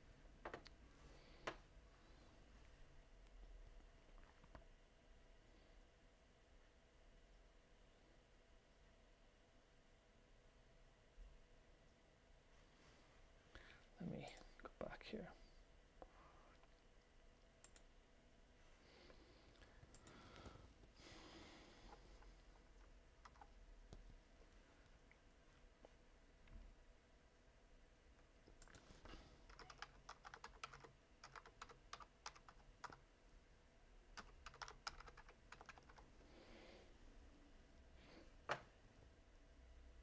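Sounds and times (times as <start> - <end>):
man whispering: 13.9 - 15.6
computer mouse clicks: 17.6 - 17.9, 19.6 - 20.5, 28.5 - 28.9
typing on computer keyboard: 22.8 - 23.6, 28.6 - 33.0, 34.2 - 36.1.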